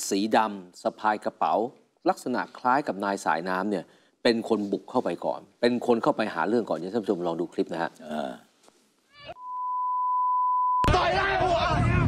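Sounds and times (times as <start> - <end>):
steady electronic beep: 9.4 - 10.9.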